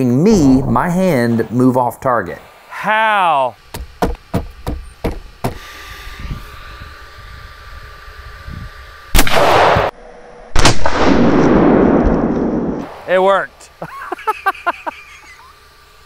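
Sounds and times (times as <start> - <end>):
pistol shots: 9.2 - 9.9, 10.6 - 13.1.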